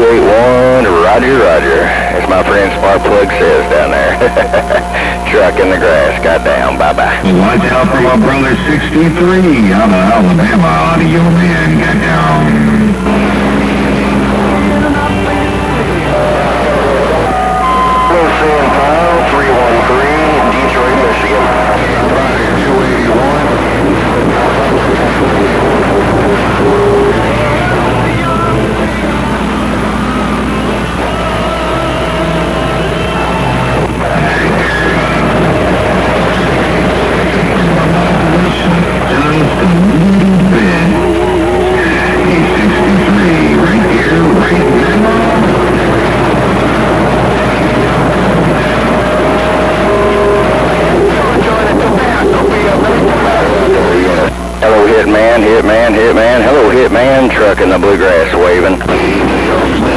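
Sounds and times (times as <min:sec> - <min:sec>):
garbled radio voices: 0:00.0 - 0:59.9
music over radio: 0:00.0 - 0:59.9
radio static hiss: 0:00.0 - 0:59.9
radio carrier whistles: 0:16.0 - 0:39.6.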